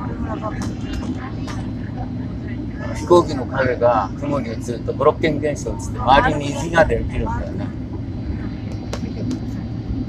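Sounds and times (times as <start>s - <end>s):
airliner cabin engine rumble: 0.0s - 10.0s.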